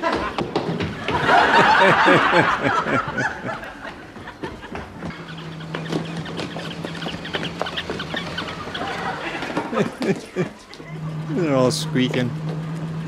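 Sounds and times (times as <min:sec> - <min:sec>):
steady low hum: 0:00.9 - 0:13.0
squeaky toys squeaking: 0:05.1 - 0:10.4.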